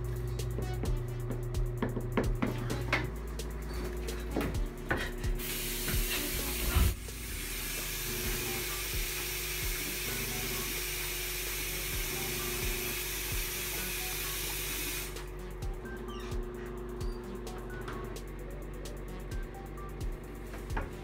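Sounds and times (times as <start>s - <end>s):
background music with steady beat: 0.0s - 21.0s
sink tap running: 5.4s - 15.2s.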